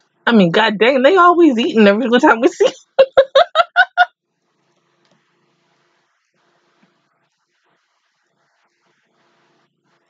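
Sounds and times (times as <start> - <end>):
woman laughing: 2.2 - 4.1.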